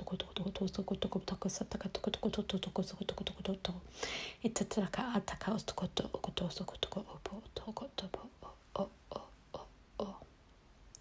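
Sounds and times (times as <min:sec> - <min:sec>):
whispered nonsense syllables: 0:04.7 - 0:10.3.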